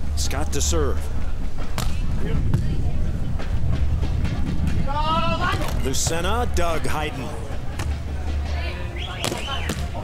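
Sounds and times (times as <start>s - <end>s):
wind buffeting microphone: 1.2s - 7.7s.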